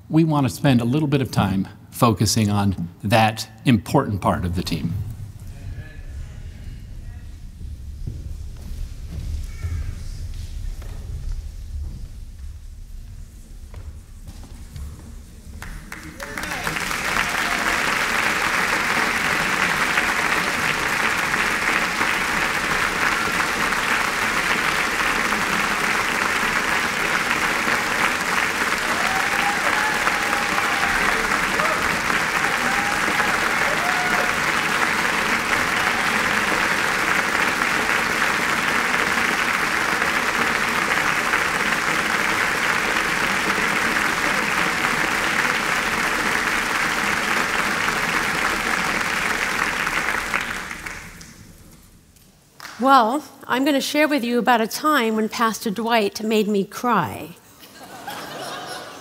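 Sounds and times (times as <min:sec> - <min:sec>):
crowd applauding: 0:15.5 - 0:51.8, 0:57.7 - 0:59.0.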